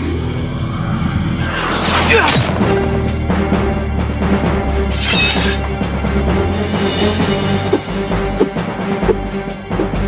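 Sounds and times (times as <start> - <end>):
dramatic cartoon music: 0.0 - 10.0.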